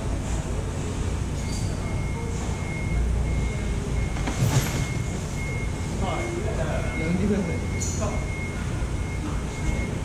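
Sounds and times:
low rumble of machinery: 0:00.0 - 0:10.0
high electronic warning beep: 0:01.4 - 0:10.0.

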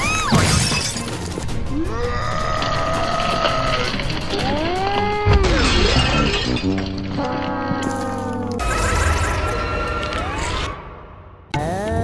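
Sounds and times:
background music: 0:00.0 - 0:12.0
wailing voice-like cry: 0:07.2 - 0:08.6.

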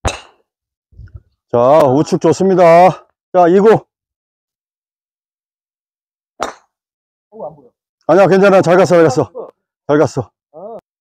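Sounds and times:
golf club striking ball: 0:00.0 - 0:00.4, 0:06.4 - 0:06.7.

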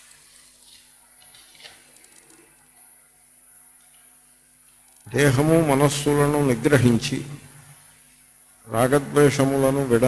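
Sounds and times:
steady high-pitched whine: 0:00.0 - 0:10.0.

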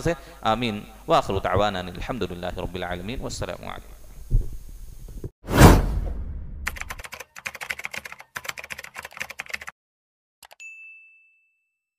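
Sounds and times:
clicky keyboard typing: 0:06.7 - 0:09.7.

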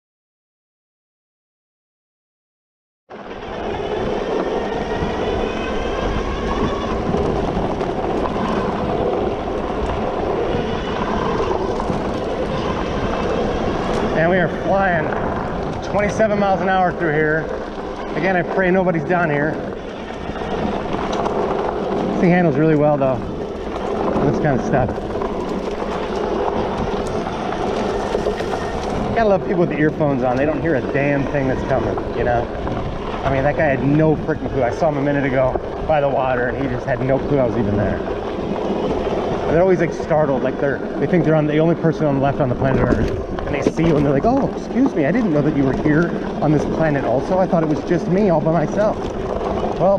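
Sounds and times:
wind and tyre noise: 0:03.1 - 0:49.9.

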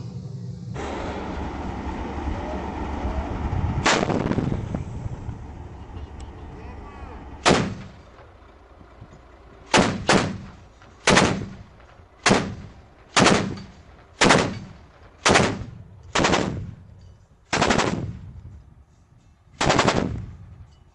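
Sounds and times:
low vehicle rumble: 0:00.0 - 0:20.9
heavy gunshots: 0:03.8 - 0:04.7, 0:07.4 - 0:08.0, 0:09.7 - 0:16.8, 0:17.5 - 0:18.2, 0:19.6 - 0:20.4.

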